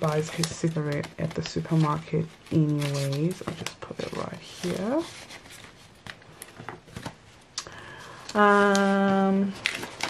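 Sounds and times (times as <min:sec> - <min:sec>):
paper and banknotes rustling: 0:00.0 - 0:07.1, 0:08.4 - 0:10.0.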